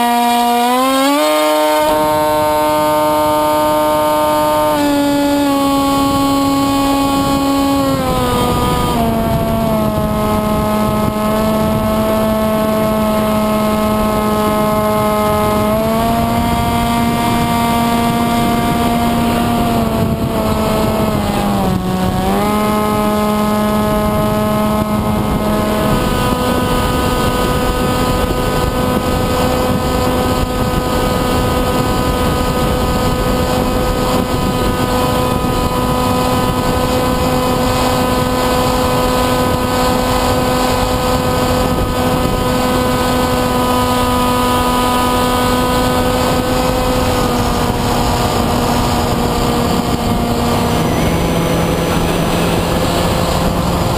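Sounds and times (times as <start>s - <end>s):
electric motor and propeller running: 0.0s - 53.9s
wind hiss: 0.1s - 53.9s.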